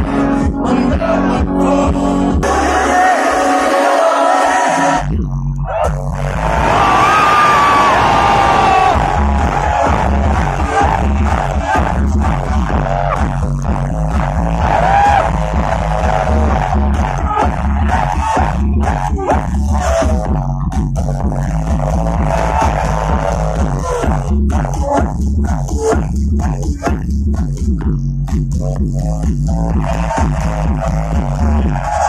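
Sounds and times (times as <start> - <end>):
electronic dance music: 0.0 - 32.0
crowd cheering: 5.7 - 13.2, 14.1 - 19.3, 22.0 - 24.0, 29.8 - 32.0.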